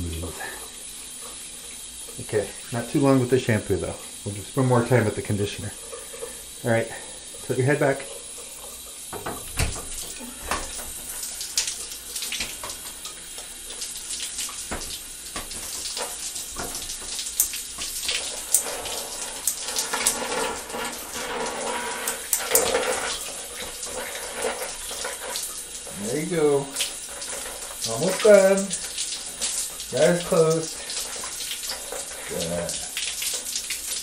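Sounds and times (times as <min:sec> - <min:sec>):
irregular water splashes: 0:00.0 - 0:34.0
shower water running: 0:00.0 - 0:34.0.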